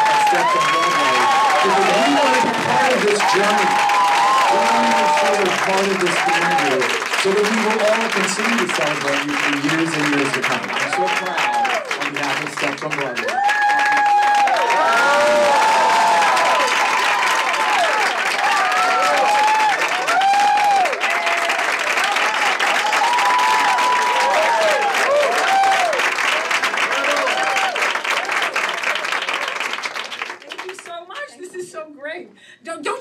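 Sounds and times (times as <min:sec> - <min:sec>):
people whooping: 0:00.0 - 0:09.1, 0:10.1 - 0:12.0, 0:13.2 - 0:29.6
audience applauding: 0:00.0 - 0:31.5.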